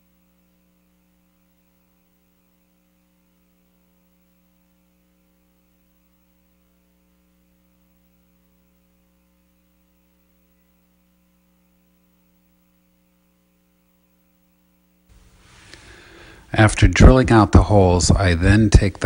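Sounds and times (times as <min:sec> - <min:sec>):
faint mains hum: 0:00.0 - 0:19.0.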